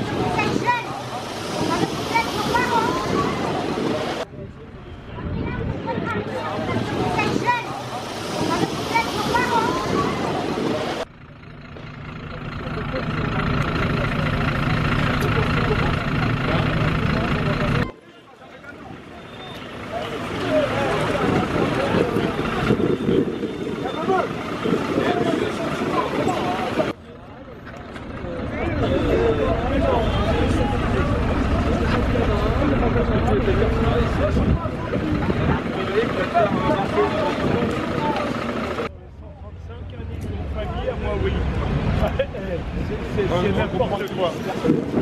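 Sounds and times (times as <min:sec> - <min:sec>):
people talking at once: 0:00.0 - 0:11.1, 0:12.4 - 0:45.0
vehicle engine idling: 0:09.9 - 0:17.9, 0:18.7 - 0:44.3
faint voices: 0:12.2 - 0:45.0.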